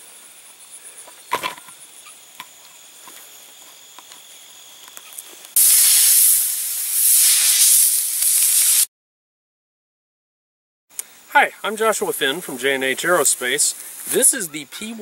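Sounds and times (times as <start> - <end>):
insects trilling: 0.0 - 8.8, 10.9 - 15.0
loud even hiss: 5.5 - 8.9.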